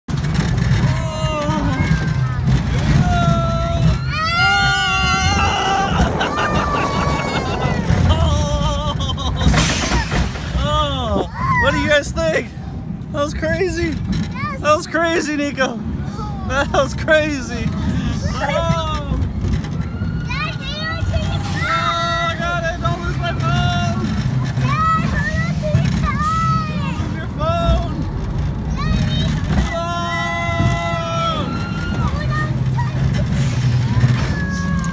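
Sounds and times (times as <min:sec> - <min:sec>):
roller coaster rumbling on track: 0:00.1 - 0:34.9
riders screaming and whooping: 0:00.4 - 0:11.9, 0:17.7 - 0:34.9
wind hitting microphone: 0:01.0 - 0:10.8.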